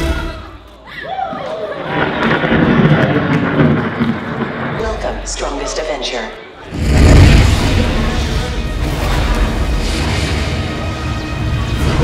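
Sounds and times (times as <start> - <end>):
thunder over loudspeakers: 1.7 - 12.0.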